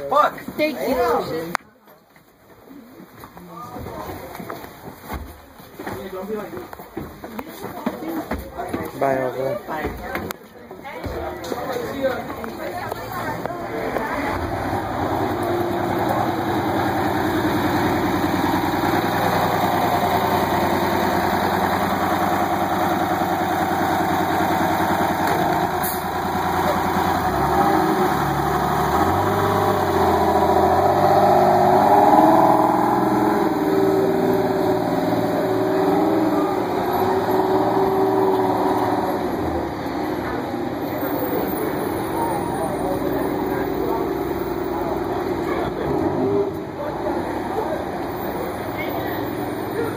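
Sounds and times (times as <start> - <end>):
bus engine pulling away: 11.4 - 49.9.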